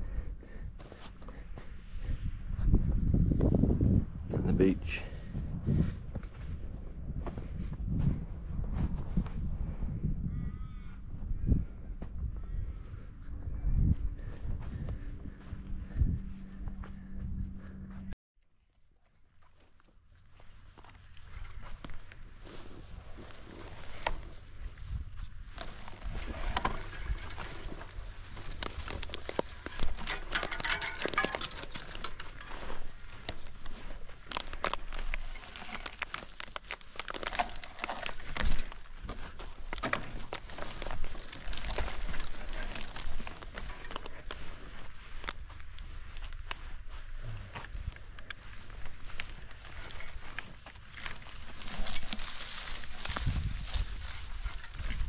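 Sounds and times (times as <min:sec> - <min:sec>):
low steady rumble: 0:11.9 - 0:18.2
footsteps in sand and scrub: 0:13.4 - 0:18.0, 0:19.3 - 0:55.0
brush rustling: 0:20.3 - 0:55.0.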